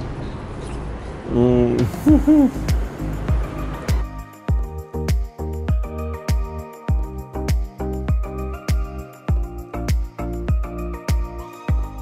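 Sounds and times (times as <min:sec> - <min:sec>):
man humming with enjoyment: 0:01.4 - 0:02.7
background music beat: 0:01.8 - 0:12.0.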